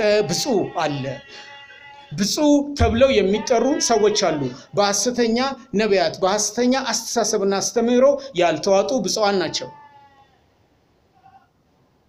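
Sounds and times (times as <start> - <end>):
man speaking: 2.2 - 9.7.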